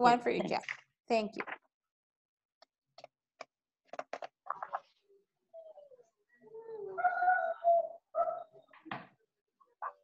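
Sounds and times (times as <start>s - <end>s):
bird cooing: 5.5s - 8.9s.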